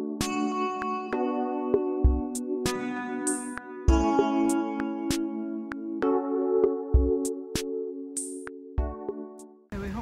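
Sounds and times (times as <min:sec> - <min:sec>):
synthesizer chords over electronic beat: 0:00.0 - 0:09.6.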